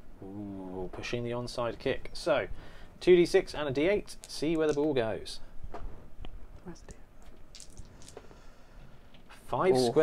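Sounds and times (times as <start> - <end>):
dice clattering on mat: 4.2 - 4.9, 7.2 - 8.3.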